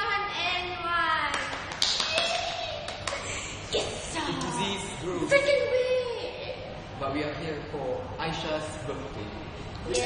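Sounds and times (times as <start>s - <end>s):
sharp hand claps: 1.2s - 3.4s.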